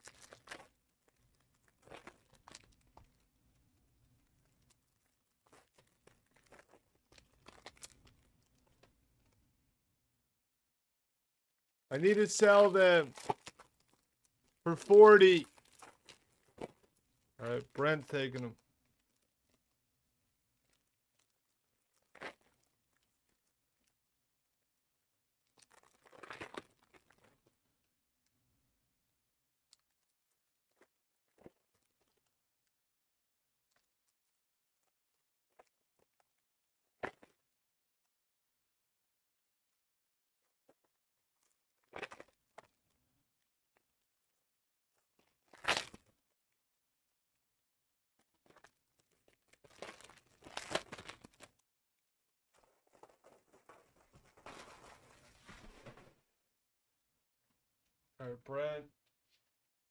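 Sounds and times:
card pack wrapper crinkling: 12.0s - 14.0s, 14.7s - 18.5s, 45.3s - 46.1s, 48.4s - 51.6s.

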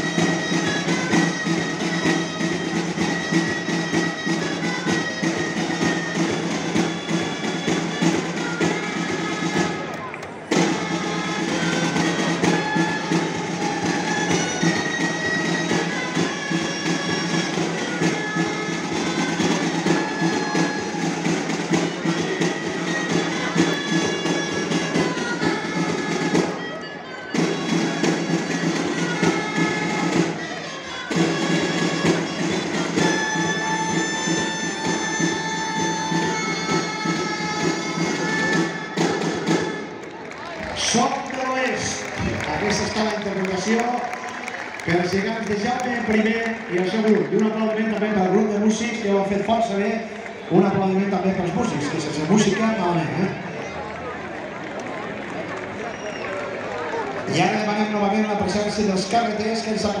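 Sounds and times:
shrill reed wind instruments: 0.0s - 53.8s.

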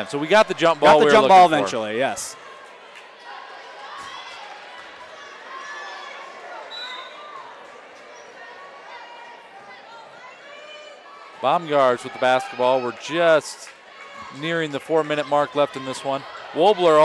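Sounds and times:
crowd talking and calling out: 0.0s - 17.0s.

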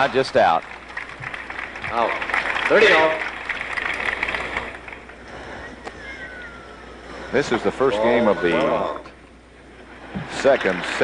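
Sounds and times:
crowd whistling and murmuring: 3.2s - 7.3s.

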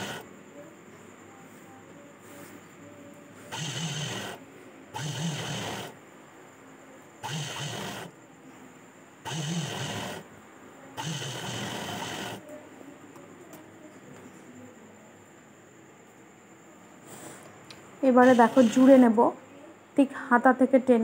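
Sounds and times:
sewing machine stitching: 0.0s - 0.2s, 3.5s - 4.4s, 5.0s - 6.0s, 7.2s - 8.1s, 9.2s - 10.3s, 11.0s - 12.4s, 18.1s - 19.2s.

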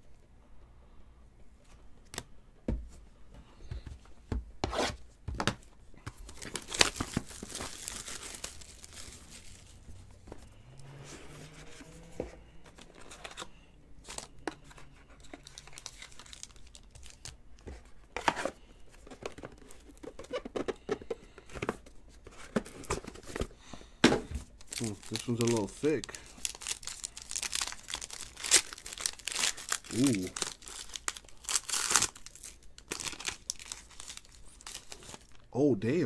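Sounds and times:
packaging tearing and crinkling: 6.1s - 9.8s, 15.2s - 17.4s, 24.6s - 35.5s.

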